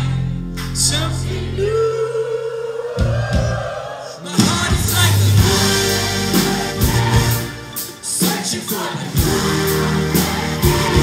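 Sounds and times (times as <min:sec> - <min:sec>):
live band music: 0:03.1 - 0:11.0
low bass notes: 0:04.4 - 0:07.8, 0:09.2 - 0:11.0.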